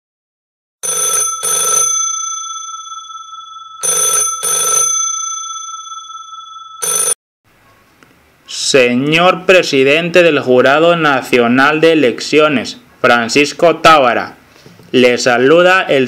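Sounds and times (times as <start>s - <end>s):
telephone bell ringing: 0.8s - 7.2s.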